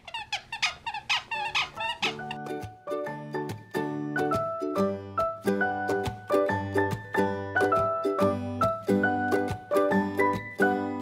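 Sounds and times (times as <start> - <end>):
squeaky toy squeaking: 0.0 - 2.6
music with held chords: 2.2 - 11.0.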